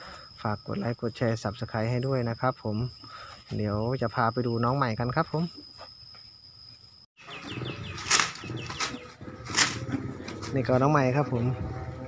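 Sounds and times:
faint insect whine: 0.0 - 12.0
small bird chirps: 7.2 - 9.2
leaves rustling: 7.2 - 11.0.

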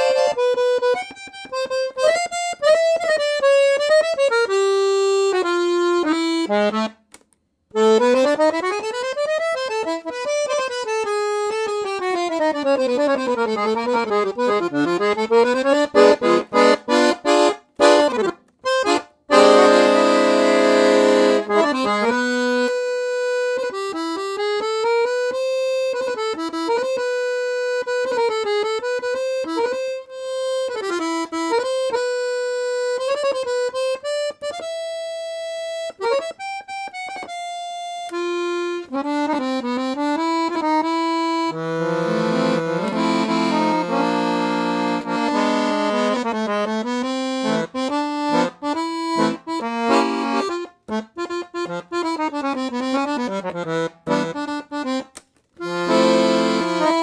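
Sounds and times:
accordion melody: 0.0 - 57.0.

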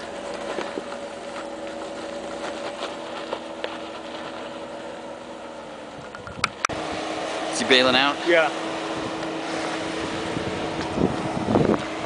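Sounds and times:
engine running at low speed: 0.0 - 12.0.

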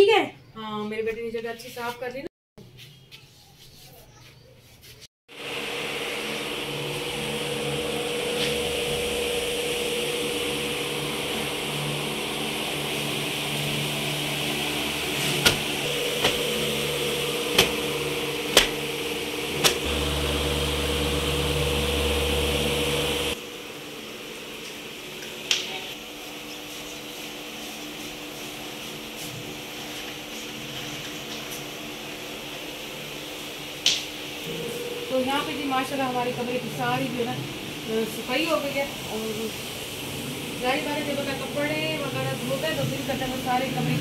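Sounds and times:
electric motor humming: 5.3 - 24.0, 34.4 - 44.0.

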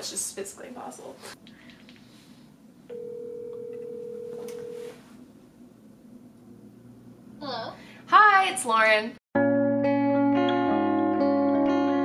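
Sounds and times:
phone ringback tone: 2.9 - 5.0.

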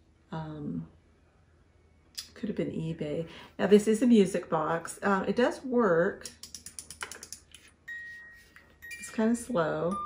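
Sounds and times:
music box plucked notes: 7.9 - 10.0.

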